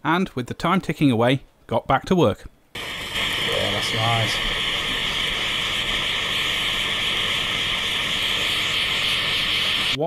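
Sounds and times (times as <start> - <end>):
blowtorch hissing: 2.8 - 10.0.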